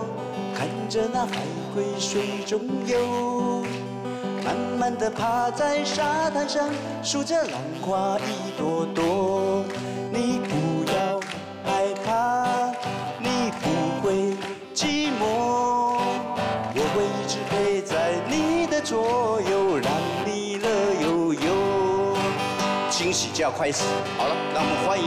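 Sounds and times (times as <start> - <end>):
acoustic guitar strumming: 0.0 - 25.0
man singing pop song: 0.0 - 25.0.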